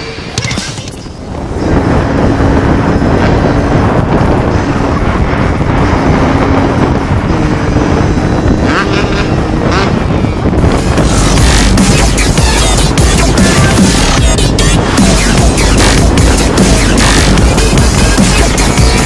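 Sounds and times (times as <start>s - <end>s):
wind noise on microphone: 0.0s - 19.0s
motorcycle engine running: 0.4s - 19.0s.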